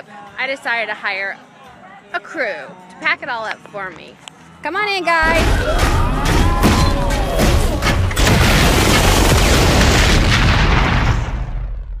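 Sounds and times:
boom-like rush of noise: 5.4 - 12.0.

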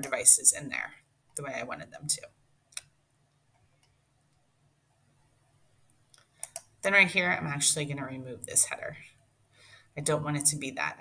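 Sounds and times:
computer mouse clicks: 2.7 - 4.4, 5.9 - 6.8.

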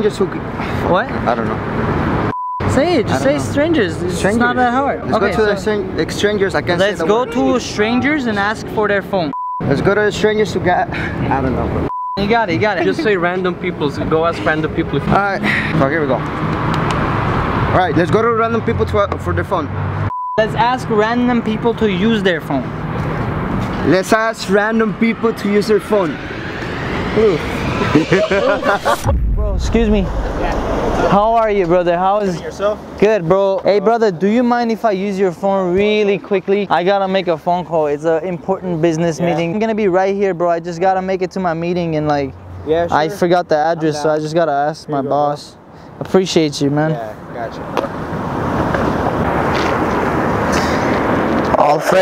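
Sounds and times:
passing vehicle rush: 0.0 - 9.1, 10.0 - 33.3, 45.2 - 52.0
street traffic rumble: 0.0 - 52.0.

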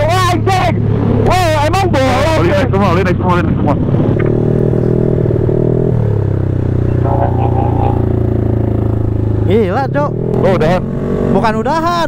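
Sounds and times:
scooter engine droning: 0.0 - 12.0.

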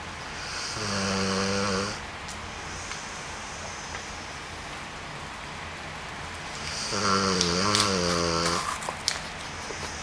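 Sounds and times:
dog snoring: 0.3 - 2.0, 6.6 - 8.8.

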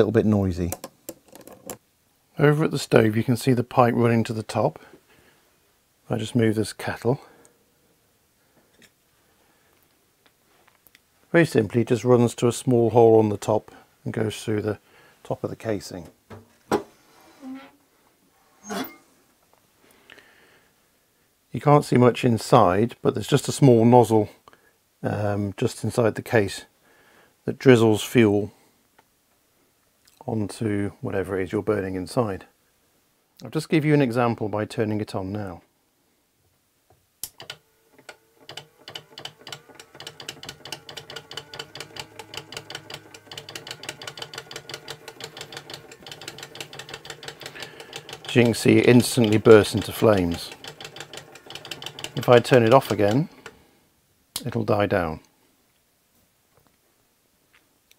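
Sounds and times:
stove door creak: 17.4 - 17.8
pump mechanism ticking: 37.2 - 53.5.

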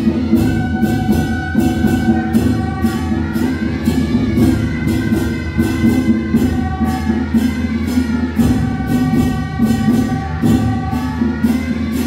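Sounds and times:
crashing cymbal strikes: 0.0 - 12.0.

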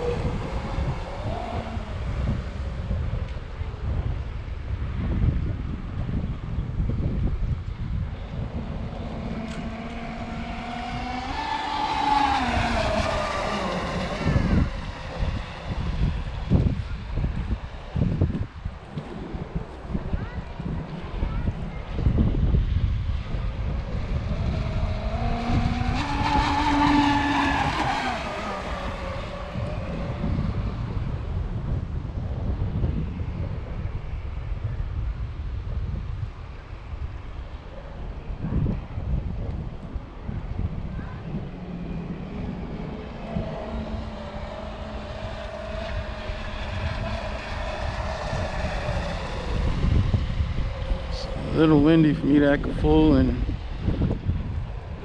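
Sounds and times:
rc speedboat motor whine: 0.0 - 3.8, 7.3 - 31.4, 40.4 - 55.0
wind buffeting microphone: 0.0 - 55.0.

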